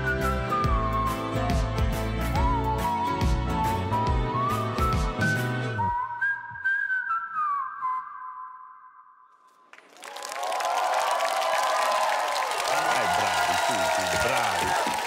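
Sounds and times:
audience applause and cheering: 9.6 - 15.0.

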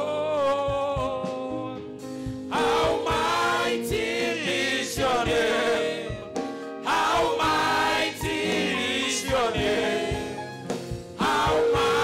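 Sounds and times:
male lead singing: 0.0 - 1.8
electronic keyboard chords: 1.5 - 12.0
steady beat: 2.4 - 12.0
backing singers: 2.5 - 12.0.

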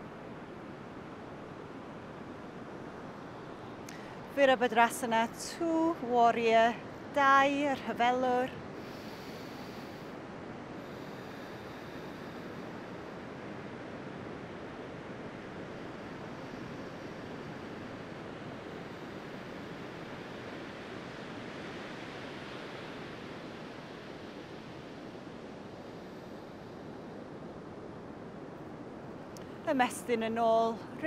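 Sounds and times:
waves breaking on beach: 0.0 - 31.0.

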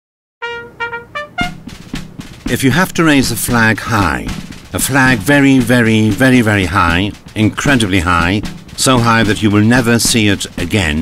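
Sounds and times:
brass fanfare: 0.4 - 3.0
drum hit: 1.2 - 11.0.

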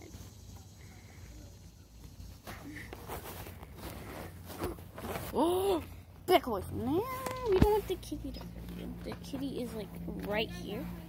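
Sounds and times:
rustling of dry grass and fur: 2.6 - 5.4.

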